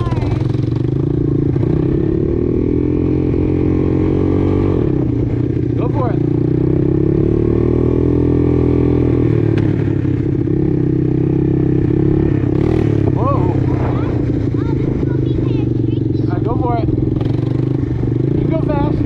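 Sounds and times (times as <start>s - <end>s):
atv engine on gravel road: 0.0s - 19.0s.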